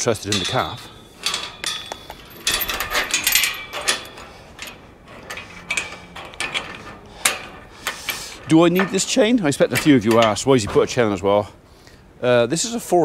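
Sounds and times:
chain rattling against metal gate: 0.0 - 11.4.

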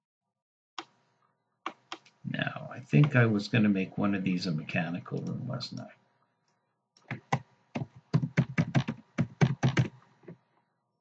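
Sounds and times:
computer keyboard typing: 1.7 - 2.2, 7.0 - 10.0.

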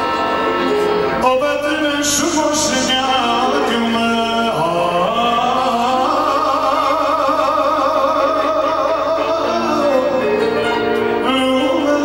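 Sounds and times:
man singing folk song: 1.2 - 12.0.

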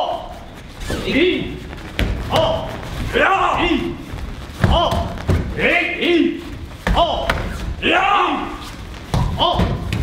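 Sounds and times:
martial arts shouts: 2.3 - 4.0, 4.6 - 8.6.

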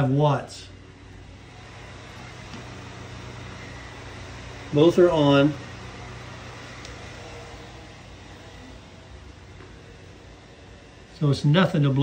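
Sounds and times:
electric fans rushing air: 0.0 - 12.0.

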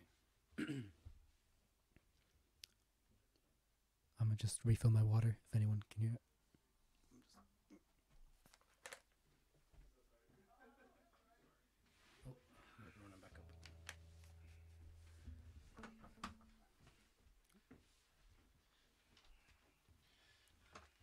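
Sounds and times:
low hum: 13.3 - 17.1.

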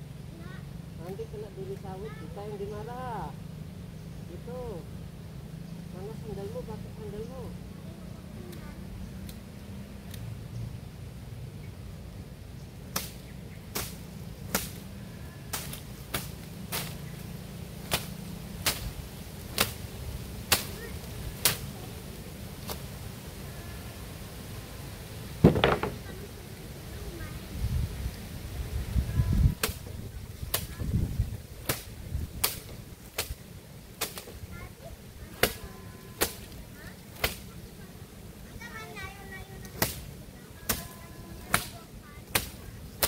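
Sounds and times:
palm leaves slapping wooden planks: 12.8 - 23.2, 25.3 - 27.3, 28.6 - 43.0
dry fronds swishing: 12.8 - 43.0.

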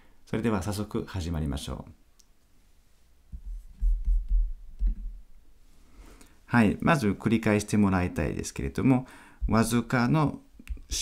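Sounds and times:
man speaking: 0.3 - 2.0, 6.5 - 11.0.

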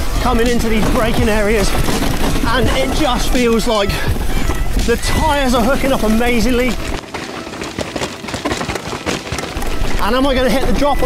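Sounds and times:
bike knocking and rattling: 0.0 - 11.0
bike tyres crackling on dirt: 0.0 - 11.0.

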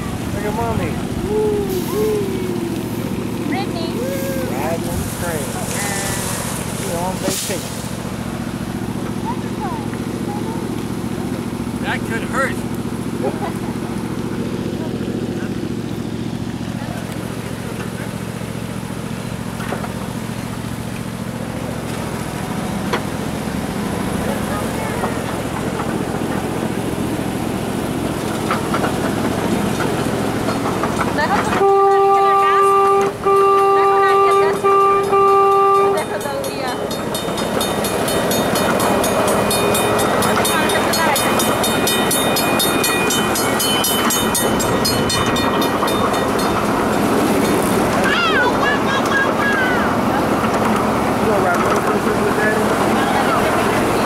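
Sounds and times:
miniature train rumbling on track: 0.0 - 54.0
train horn blasts: 31.4 - 36.8.

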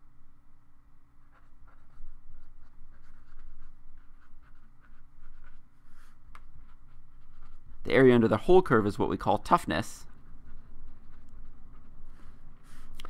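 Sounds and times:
marker scratching on paper: 1.2 - 9.0, 9.6 - 13.0.

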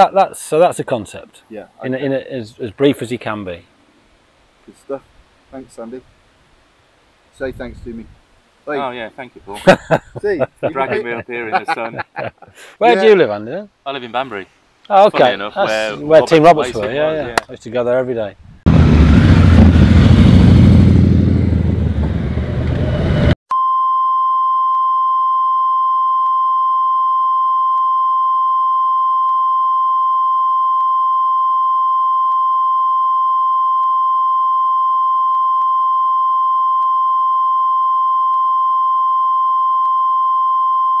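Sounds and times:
motorcycle riding past: 18.7 - 23.4.

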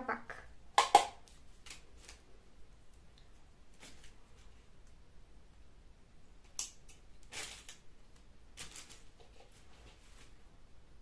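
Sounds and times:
craft materials rustling: 7.2 - 10.4.

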